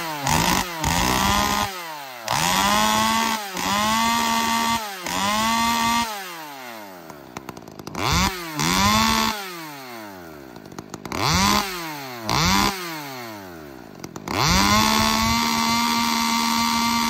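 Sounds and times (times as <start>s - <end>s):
chainsaw revving: 0.0s - 17.0s.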